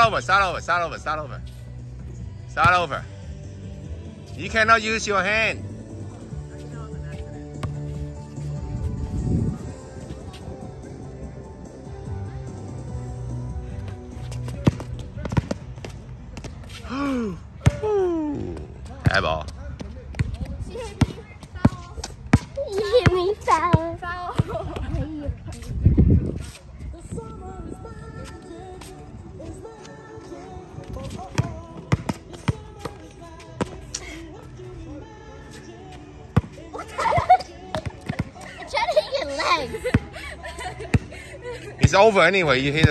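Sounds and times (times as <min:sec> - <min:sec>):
basketball bouncing on court: 0:14.5 - 0:16.5, 0:19.8 - 0:24.8, 0:31.3 - 0:33.0, 0:37.7 - 0:38.4
person crying out: 0:16.9 - 0:18.6.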